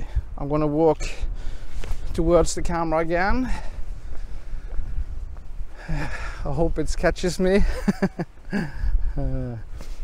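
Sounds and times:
wind buffeting microphone: 0:00.0 - 0:10.0
person breathing: 0:01.2 - 0:02.0, 0:03.4 - 0:06.6
faint walking scuffs: 0:01.6 - 0:05.7.

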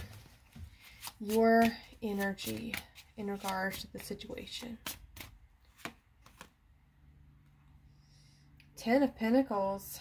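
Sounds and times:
cards being cut and drawn: 0:00.7 - 0:06.5.

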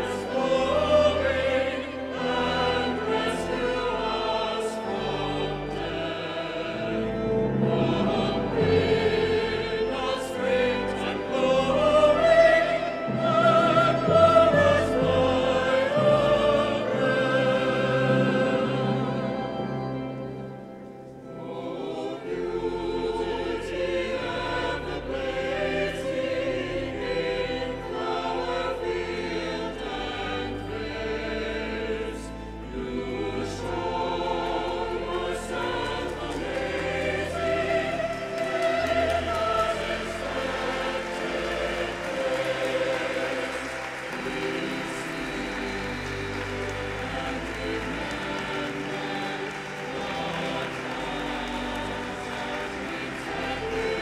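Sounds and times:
choir singing a hymn: 0:00.0 - 0:54.0
pipe organ bass notes: 0:00.0 - 0:54.0.

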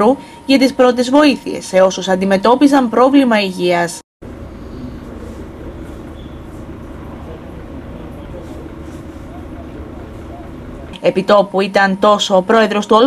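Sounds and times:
hubbub of indistinct voices: 0:04.7 - 0:11.0.

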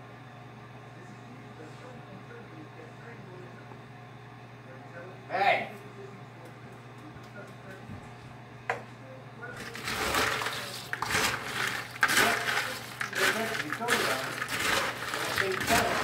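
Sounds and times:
snack mix stirred in a bowl: 0:09.6 - 0:16.0.

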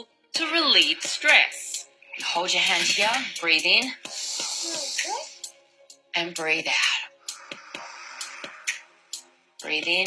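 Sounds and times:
deep breath in: 0:07.1 - 0:09.4.

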